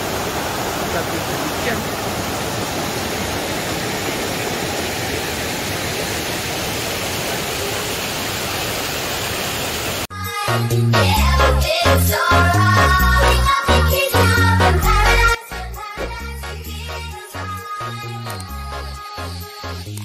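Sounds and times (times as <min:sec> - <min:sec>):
river water over rocks: 0:00.0 - 0:10.1
small waterfall: 0:00.0 - 0:10.1.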